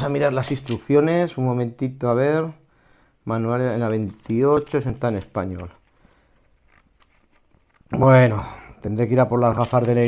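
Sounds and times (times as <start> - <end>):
paper pages rustling: 0.0 - 1.0, 3.7 - 8.3, 9.1 - 10.0.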